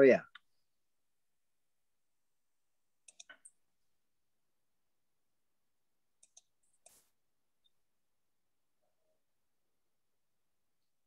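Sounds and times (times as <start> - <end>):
computer mouse clicks: 3.0 - 3.6, 6.2 - 7.1.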